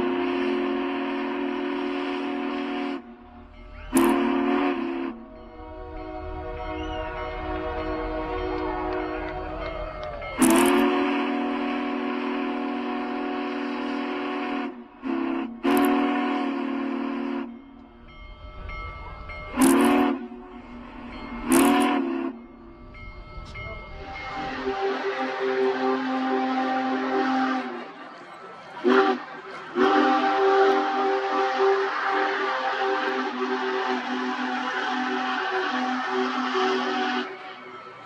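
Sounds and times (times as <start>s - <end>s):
steam whistle blowing a chord: 0.0s - 17.9s, 19.6s - 22.8s, 23.5s - 28.1s, 28.8s - 37.8s.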